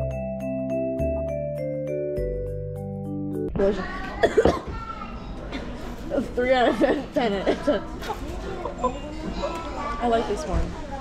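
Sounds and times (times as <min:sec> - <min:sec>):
woman coughing: 0:04.2 - 0:04.7, 0:06.7 - 0:08.2.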